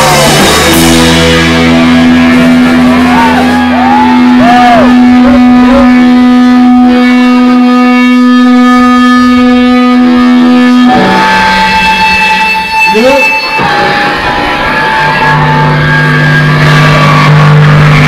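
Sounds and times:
electric guitar sustained note: 0:00.0 - 0:18.0
live rock band: 0:00.0 - 0:18.0.

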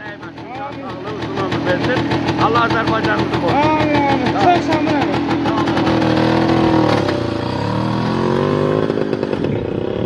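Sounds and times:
motor tricycle engine pulling away: 0:00.0 - 0:10.0.

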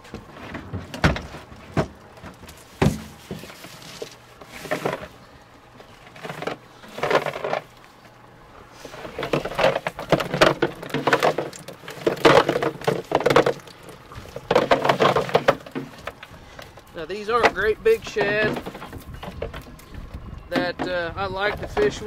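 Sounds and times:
fish knocking against cooler: 0:00.6 - 0:03.6, 0:09.2 - 0:16.8, 0:17.4 - 0:22.0.

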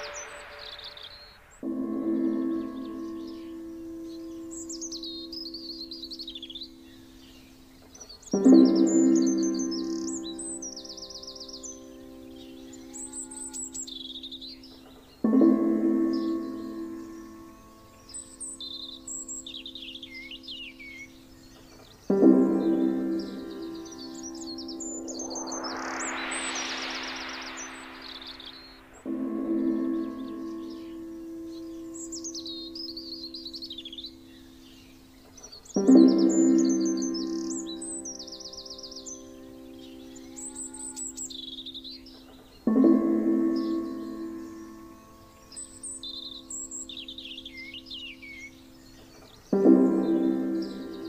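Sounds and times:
hissing swell: 0:00.0 - 0:03.9, 0:22.1 - 0:32.0
birdsong chirping: 0:00.0 - 0:51.0.

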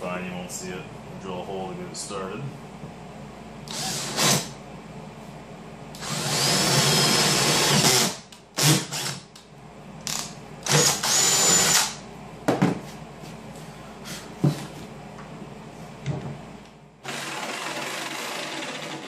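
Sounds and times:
electric drill whining: 0:03.7 - 0:04.5, 0:06.0 - 0:09.2, 0:10.1 - 0:12.0, 0:17.0 - 0:19.0.

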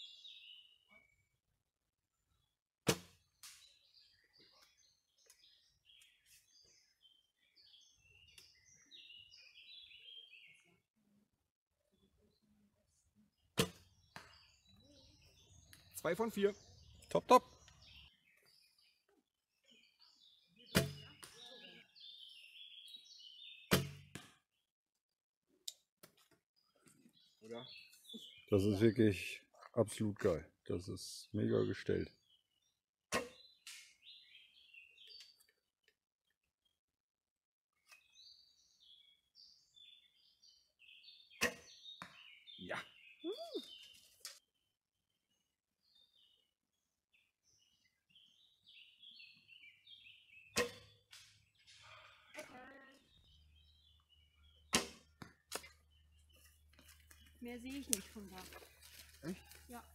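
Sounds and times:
small birds chirping: 0:00.0 - 0:36.8, 0:37.7 - 0:59.9
bowstring snap: 0:54.7 - 0:55.8.

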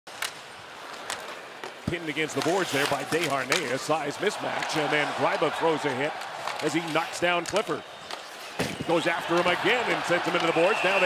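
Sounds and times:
arena crowd noise: 0:00.4 - 0:11.0
commentator speaking: 0:08.9 - 0:11.0.

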